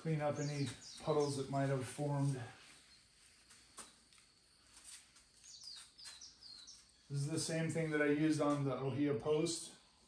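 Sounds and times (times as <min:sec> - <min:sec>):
faint bird chirps: 0:00.0 - 0:01.7, 0:02.6 - 0:04.2, 0:05.3 - 0:09.1.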